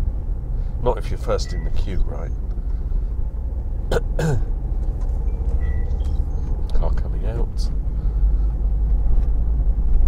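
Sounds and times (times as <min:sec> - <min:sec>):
car engine and road rumble: 0:00.0 - 0:10.0
person clearing throat: 0:03.9 - 0:04.5.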